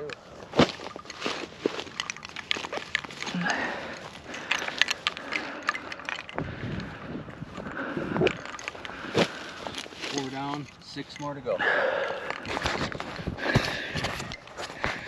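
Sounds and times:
footsteps through grass: 0:07.4 - 0:10.6.

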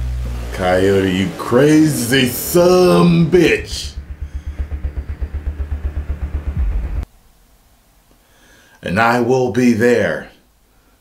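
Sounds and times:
low throbbing pulsing sound effect: 0:00.0 - 0:07.1.

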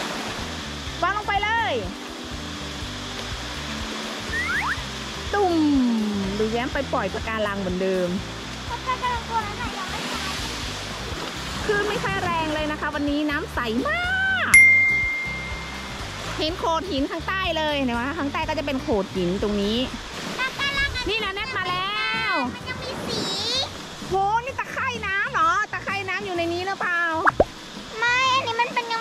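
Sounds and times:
background music: 0:00.0 - 0:20.2, 0:21.0 - 0:29.0
bright bell ding: 0:14.6 - 0:16.2.

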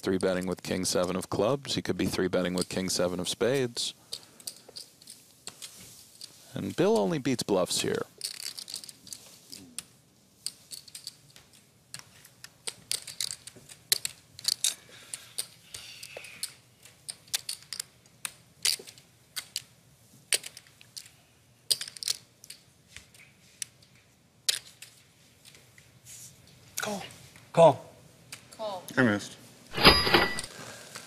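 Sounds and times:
poker chips clicking: 0:08.2 - 0:09.2, 0:16.4 - 0:19.7.

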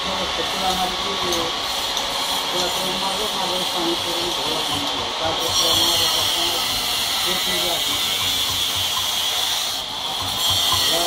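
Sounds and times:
loud steady hiss: 0:00.0 - 0:11.0.

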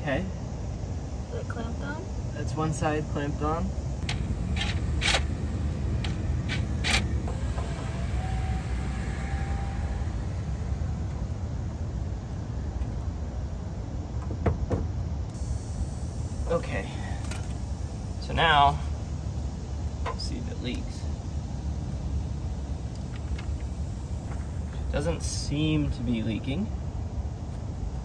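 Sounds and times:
low background rumble: 0:00.0 - 0:28.0.

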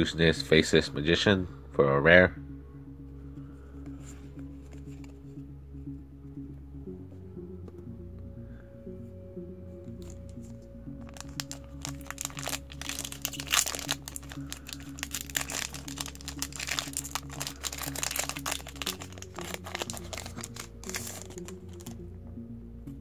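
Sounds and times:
background music: 0:00.0 - 0:23.0
wrapper crinkling and tearing: 0:11.0 - 0:21.9.

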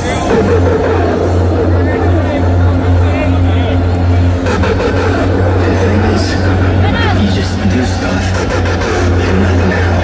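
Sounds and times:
hardcore electronic music: 0:00.0 - 0:10.0
held deep bass note: 0:00.0 - 0:10.0
voices: 0:00.0 - 0:10.0.

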